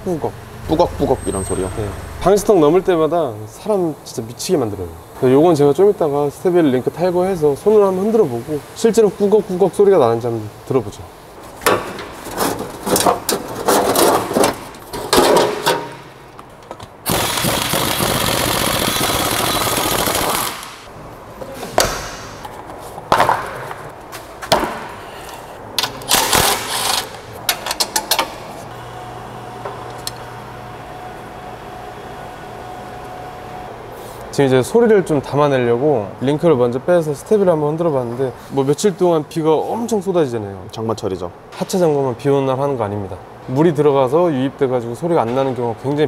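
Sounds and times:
power tool running: 0:17.1 - 0:20.9.

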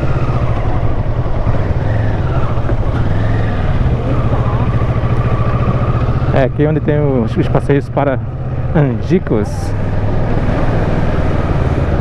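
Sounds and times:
motorcycle engine running at low revs: 0:00.0 - 0:12.0.

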